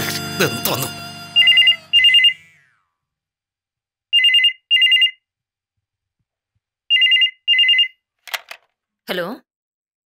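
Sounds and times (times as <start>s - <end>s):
desk telephone ringing: 4.2s - 5.2s, 6.9s - 8.6s.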